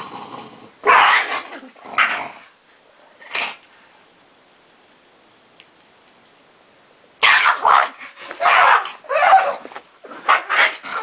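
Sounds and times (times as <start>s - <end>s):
dog barking in play: 0.8s - 1.5s, 7.2s - 11.0s.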